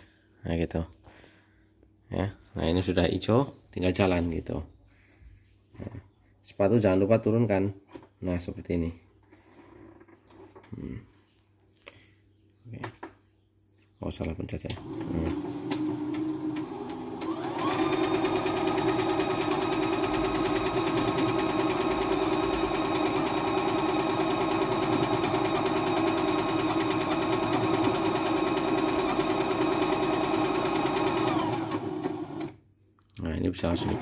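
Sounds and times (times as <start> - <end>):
sewing machine stitching: 14.7 - 32.6, 33.6 - 34.0.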